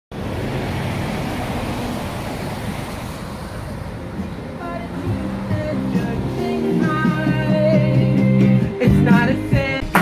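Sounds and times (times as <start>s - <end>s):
street traffic noise: 0.1s - 10.0s.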